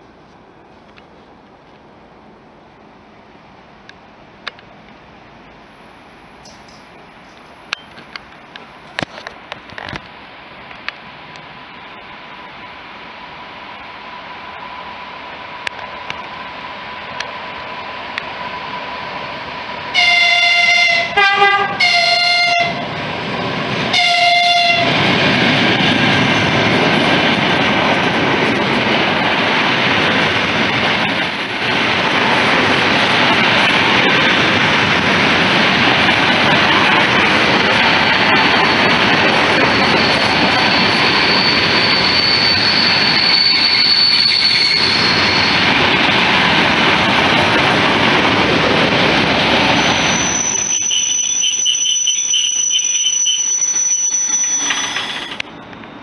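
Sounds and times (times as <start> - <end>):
train wheels rushing on rail: 0.0 - 56.0
train horn short blasts: 20.0 - 22.8, 23.9 - 24.9
thin high squeal: 39.6 - 45.7, 49.8 - 55.4.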